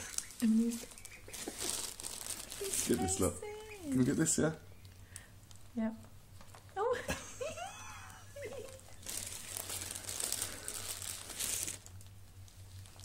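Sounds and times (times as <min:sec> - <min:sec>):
crinkling rustling noise: 0:00.0 - 0:06.8, 0:08.5 - 0:13.0
person laughing: 0:06.8 - 0:09.0.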